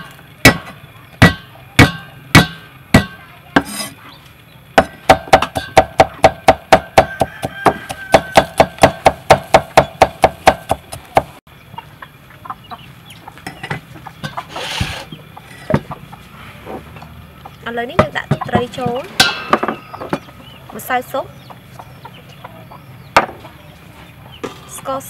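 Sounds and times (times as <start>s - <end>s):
cleaver chopping on wooden board: 0.4s - 3.9s, 4.8s - 11.3s.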